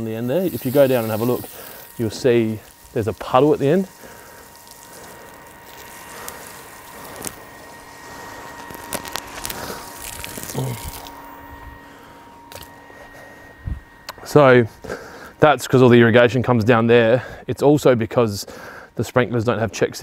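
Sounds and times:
faint steady hiss: 0:00.0 - 0:12.6
thin high whine: 0:00.0 - 0:20.0.

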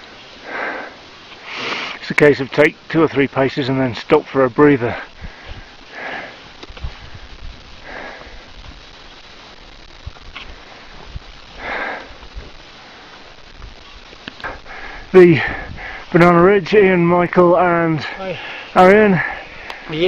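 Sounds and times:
heavy labored breathing: 0:00.3 - 0:02.0, 0:05.0 - 0:08.8, 0:10.4 - 0:13.2, 0:14.4 - 0:16.2, 0:18.0 - 0:20.0.

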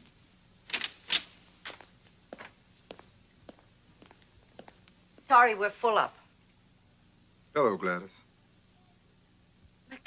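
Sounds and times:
woman's footsteps: 0:01.1 - 0:05.3.

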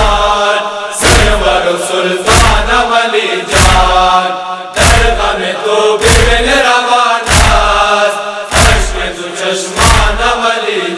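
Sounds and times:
person chanting a lament: 0:00.0 - 0:10.9
deep regular thump: 0:02.3 - 0:02.8, 0:03.6 - 0:04.0, 0:04.8 - 0:05.2, 0:06.1 - 0:06.5, 0:07.3 - 0:07.9, 0:08.6 - 0:09.1, 0:09.8 - 0:10.2.

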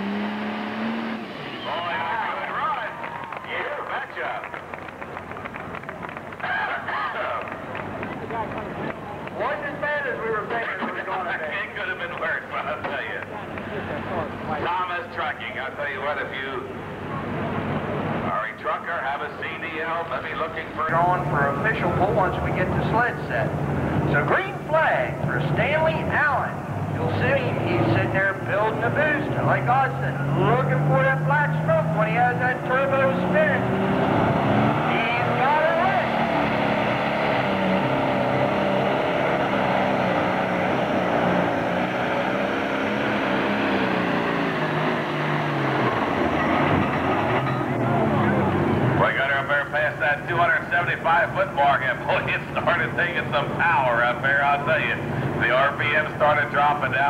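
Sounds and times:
diesel engine revving: 0:00.0 - 0:16.0, 0:19.6 - 0:57.0
turbocharger whine: 0:20.2 - 0:51.2.

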